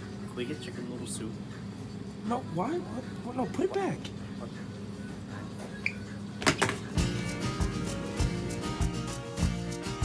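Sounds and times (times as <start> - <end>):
steady room hum: 0.0 - 10.0
background guitar music: 6.9 - 10.0.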